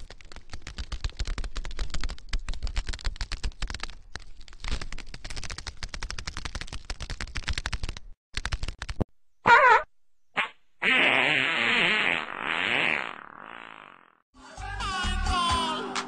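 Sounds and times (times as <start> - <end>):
rapid clatter of clicks and cracks: 0.0 - 9.1.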